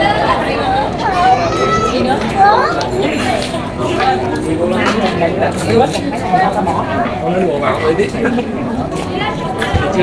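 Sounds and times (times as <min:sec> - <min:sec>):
street crowd voices: 0:00.0 - 0:10.0.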